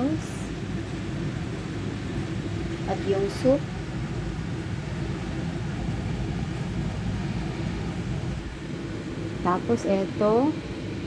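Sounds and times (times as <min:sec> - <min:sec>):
low kitchen rumble: 0:00.0 - 0:11.0.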